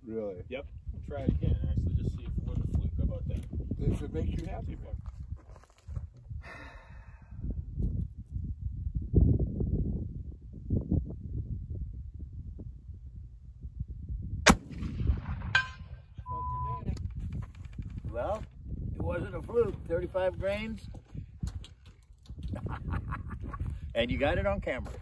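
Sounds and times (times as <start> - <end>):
rifle shot: 14.5 - 16.1
short ringing tone: 15.6 - 16.9.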